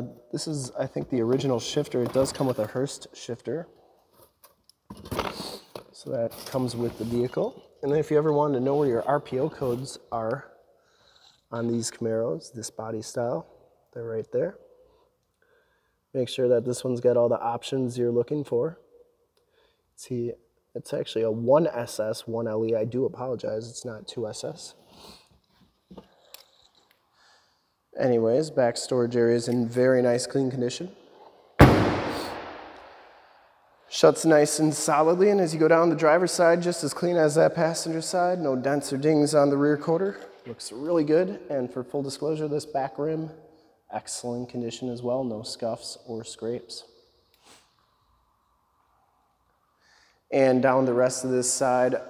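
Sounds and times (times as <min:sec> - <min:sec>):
breath through nose: 0:49.8 - 0:50.3.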